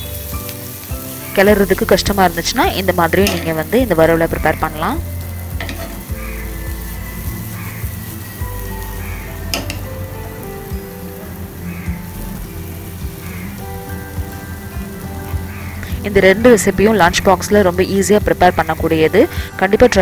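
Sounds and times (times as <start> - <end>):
slices frying in a pan: 0.0 - 20.0
slow instrumental music: 0.0 - 20.0.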